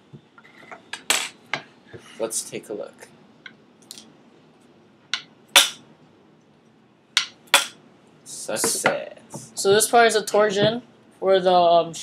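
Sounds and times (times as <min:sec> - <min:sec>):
catapult sharp snap: 0:05.6 - 0:05.8.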